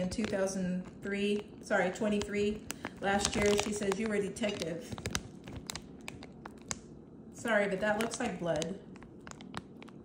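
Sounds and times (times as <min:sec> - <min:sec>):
plastic bag crinkling: 0:00.0 - 0:10.0
sharp crackles and clicks: 0:00.0 - 0:10.0.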